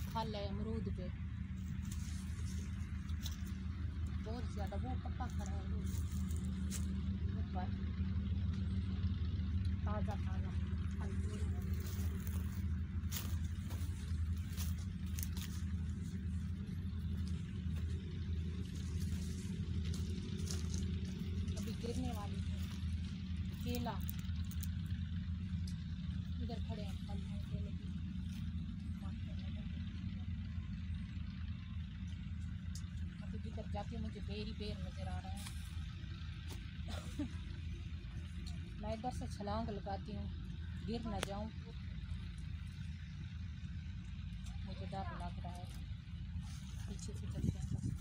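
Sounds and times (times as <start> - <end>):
dry branches and leaves crackling: 0.0 - 48.0
low engine-like drone: 0.0 - 48.0.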